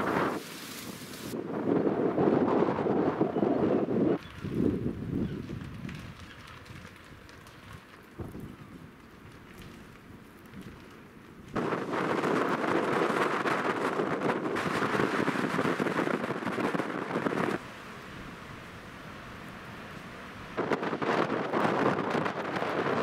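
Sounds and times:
snowstorm wind rushing: 0.0s - 6.8s, 11.5s - 23.0s
wind buffeting microphone: 0.0s - 17.6s, 19.7s - 23.0s.

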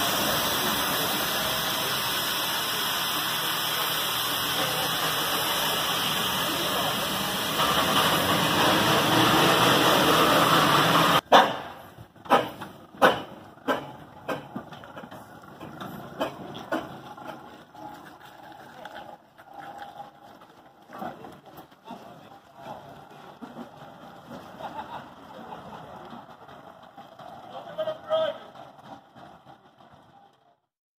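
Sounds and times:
steam engine exhaust chuffs: 0.0s - 18.9s, 19.5s - 30.7s
iron wheels rumbling on road: 0.0s - 30.7s.

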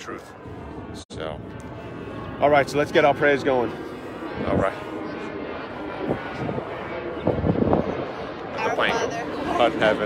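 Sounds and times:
aircraft engine drone: 0.0s - 10.0s.

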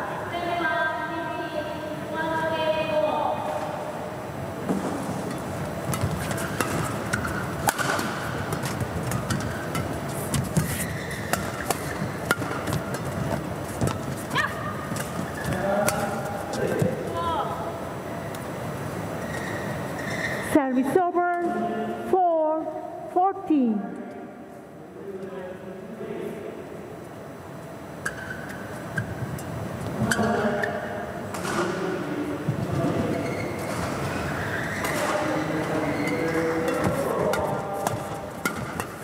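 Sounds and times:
shoes squeaking on court: 4.7s - 17.0s, 19.2s - 20.6s, 28.0s - 30.8s, 32.5s - 38.8s
rackets hitting shuttlecock: 5.2s - 14.3s, 36.4s - 39.0s.

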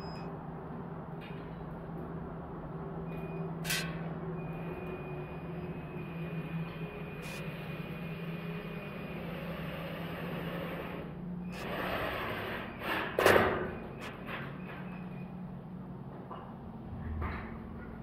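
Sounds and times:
steady low hum: 0.0s - 18.0s
short clicks: 3.6s - 4.0s.

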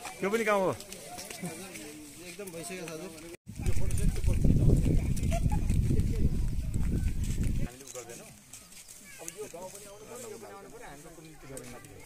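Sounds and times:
wind buffeting microphone: 3.5s - 7.7s.

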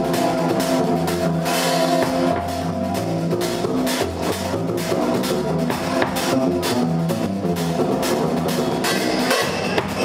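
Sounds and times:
bass line: 0.0s - 10.0s
drum kit: 0.0s - 10.0s
live band playing: 0.0s - 10.0s.

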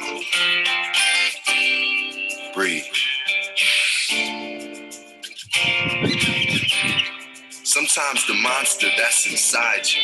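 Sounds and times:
guitar strumming: 0.0s - 10.0s.

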